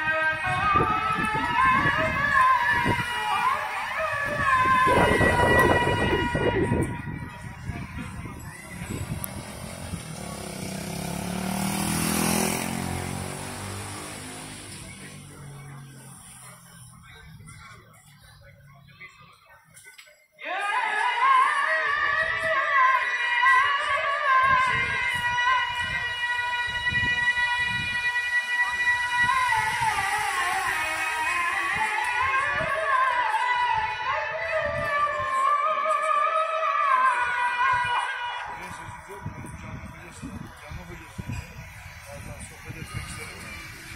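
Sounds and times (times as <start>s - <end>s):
person chanting over loudspeakers: 0.0s - 11.2s, 20.4s - 43.9s
car passing: 8.0s - 17.5s, 26.3s - 32.5s, 37.5s - 43.9s.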